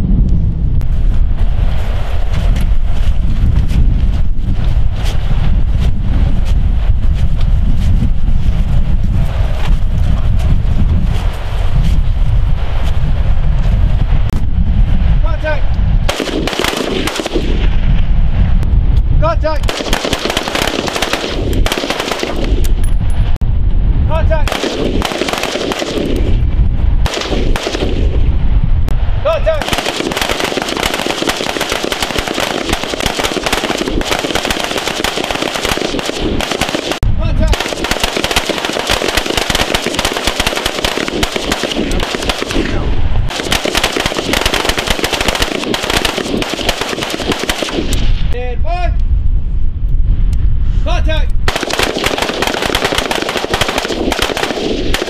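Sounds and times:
rifles firing: 16.1s - 17.6s, 19.6s - 22.7s, 24.4s - 26.4s, 27.0s - 28.2s, 29.6s - 48.0s, 51.5s - 55.0s.

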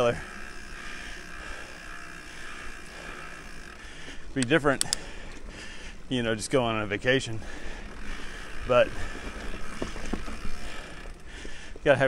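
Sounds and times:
mountain bike rolling on dirt: 0.0s - 12.0s.

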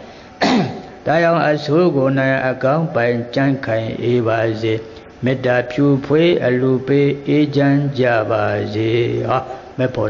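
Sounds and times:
man chanting slowly: 1.0s - 10.0s.

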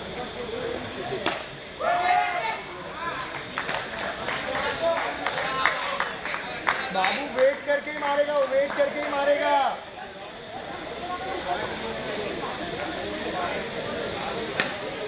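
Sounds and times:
players shouting: 1.8s - 3.4s.

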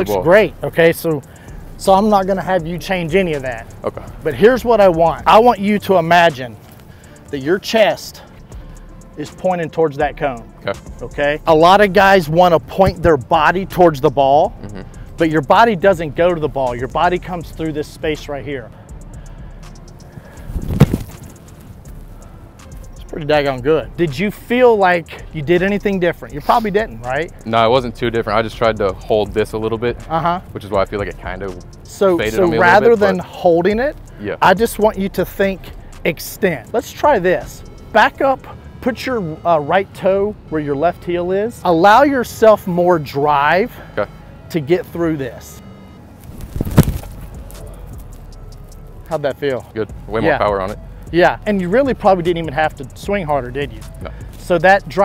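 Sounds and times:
quiet background music: 0.0s - 55.0s
steady low rumble: 14.5s - 15.2s
foot kicking football thud: 20.6s - 21.3s.

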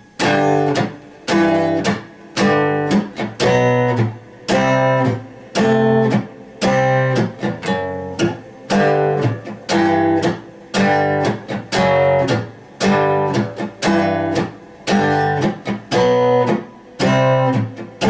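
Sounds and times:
acoustic guitar strumming blues: 0.0s - 18.0s.

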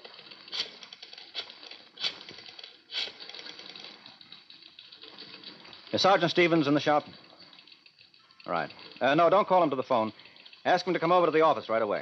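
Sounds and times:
rotary dial clicking: 0.0s - 11.7s.

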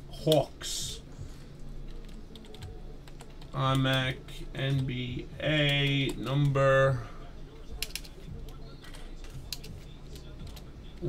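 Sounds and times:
computer keyboard keystrokes: 7.8s - 8.1s, 8.9s - 9.7s.

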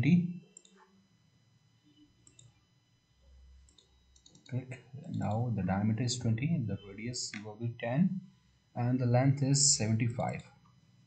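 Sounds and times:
computer mouse clicks: 0.6s - 0.8s, 2.2s - 2.6s, 3.7s - 4.5s.

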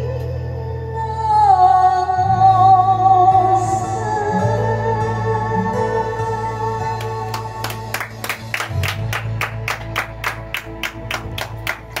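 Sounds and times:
karaoke backing track: 0.0s - 12.0s
hands clapping: 7.0s - 12.0s.

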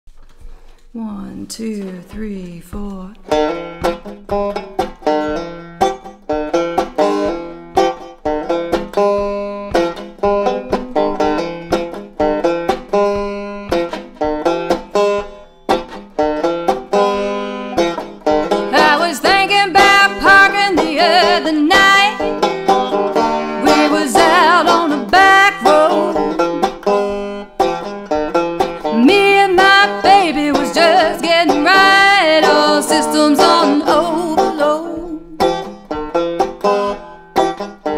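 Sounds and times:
banjo picking: 2.8s - 37.9s.

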